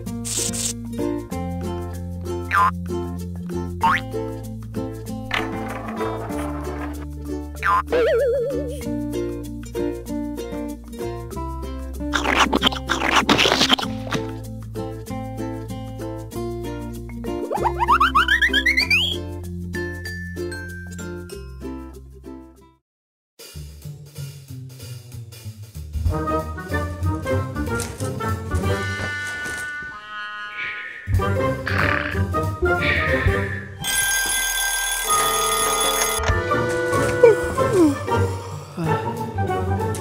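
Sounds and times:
children's background music: 0:01.0 - 0:22.0
rising cartoon boings: 0:17.5 - 0:19.2, 0:28.6 - 0:33.9
cartoon alarm clock bell ringing: 0:33.8 - 0:36.3
light background music: 0:35.2 - 0:40.0.

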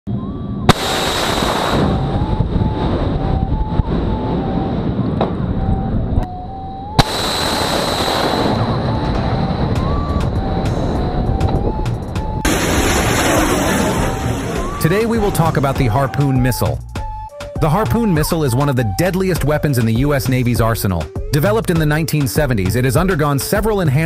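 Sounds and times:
rocket booster rush: 0:00.6 - 0:03.2, 0:07.0 - 0:11.2, 0:12.4 - 0:16.4
missile launch crack: 0:00.7 - 0:02.9, 0:07.0 - 0:09.4, 0:12.4 - 0:15.9.

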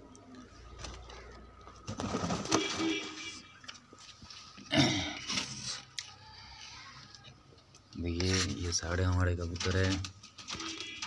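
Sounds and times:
rustling and scraping: 0:00.7 - 0:06.0, 0:08.1 - 0:11.0.

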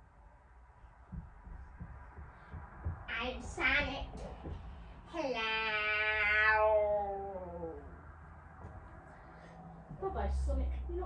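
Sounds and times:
footsteps on a staircase: 0:00.9 - 0:05.0, 0:08.5 - 0:09.2, 0:09.8 - 0:10.4.

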